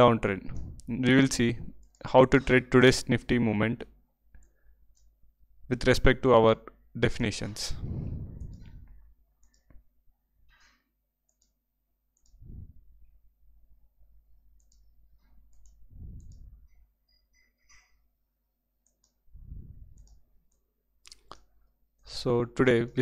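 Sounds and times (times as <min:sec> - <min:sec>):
soft low thumps: 0:00.4 - 0:00.9, 0:07.8 - 0:09.0
faint computer mouse clicks: 0:09.4 - 0:09.8, 0:11.3 - 0:11.6, 0:14.6 - 0:14.9, 0:15.5 - 0:16.5, 0:18.8 - 0:19.2, 0:19.9 - 0:21.5.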